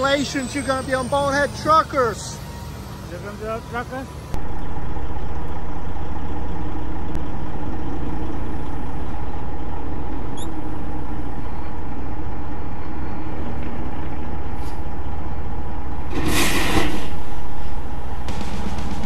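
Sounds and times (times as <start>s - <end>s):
truck engine rumbling: 0.0s - 19.0s.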